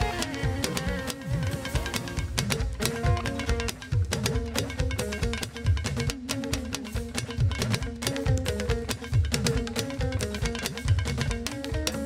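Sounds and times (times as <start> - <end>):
live band music: 0.0 - 12.0
talking drum pitch-bending strokes: 0.0 - 12.0.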